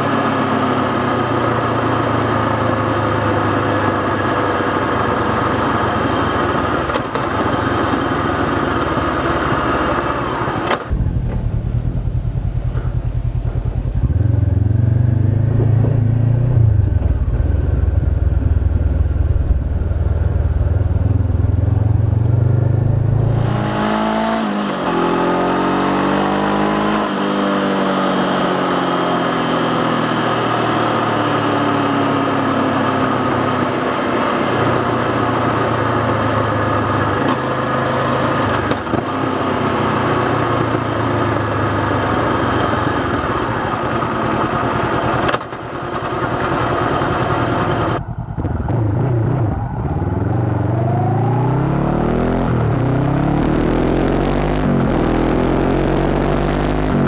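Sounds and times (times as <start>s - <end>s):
deep steady engine drone: 0.0s - 25.3s, 28.8s - 57.0s
motorcycle engine running: 0.0s - 25.9s, 26.6s - 57.0s.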